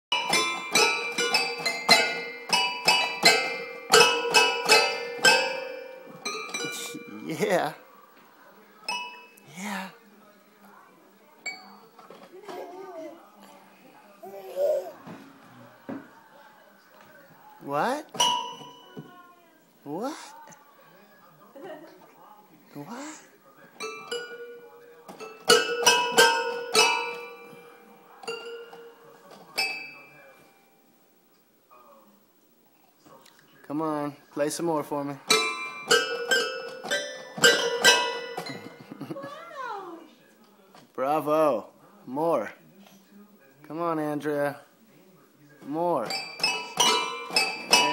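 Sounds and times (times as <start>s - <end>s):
toy piano banged: 0.1s - 7.1s, 18.2s - 18.8s, 23.8s - 27.6s, 28.2s - 29.0s, 35.3s - 38.8s, 46.0s - 47.9s.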